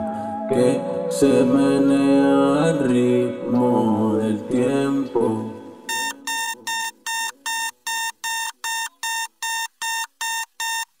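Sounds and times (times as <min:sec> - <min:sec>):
song music: 0:00.0 - 0:07.5
electronic alert beeps: 0:05.9 - 0:10.9.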